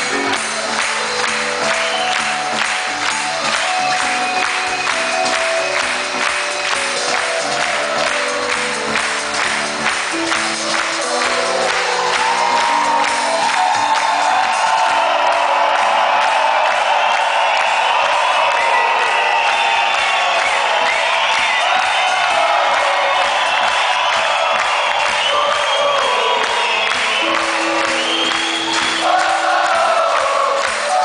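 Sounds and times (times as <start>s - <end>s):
crowd cheering and whooping: 0.0s - 31.0s.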